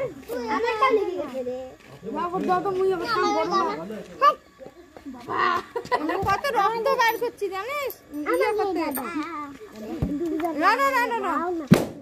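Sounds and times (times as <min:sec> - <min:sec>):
children chattering: 0:00.0 - 0:11.7.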